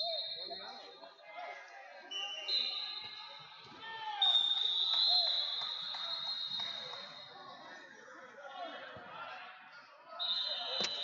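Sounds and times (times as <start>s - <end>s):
chatter in a hall: 0.0s - 11.0s
referee's whistle blast: 4.1s - 7.3s, 10.2s - 11.0s.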